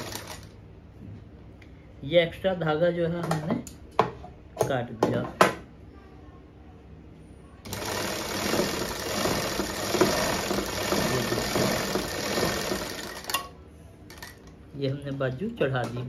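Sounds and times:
industrial sewing machine running: 0.0s - 0.6s, 7.7s - 13.5s.

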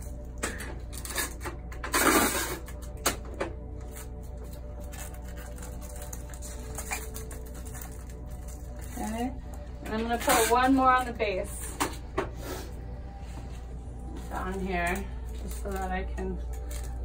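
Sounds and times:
low steady hum: 0.0s - 17.0s
plastic film crinkling: 3.6s - 11.5s, 14.3s - 17.0s.

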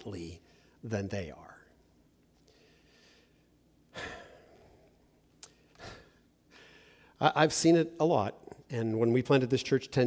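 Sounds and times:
man sighing: 3.9s - 4.9s.

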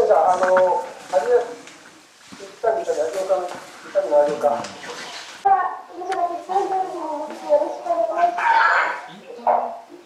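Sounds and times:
voices calling goodbyes: 0.0s - 10.0s.

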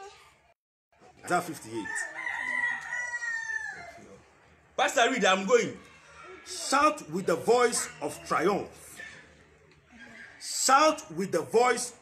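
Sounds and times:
rooster crowing: 1.8s - 4.2s.

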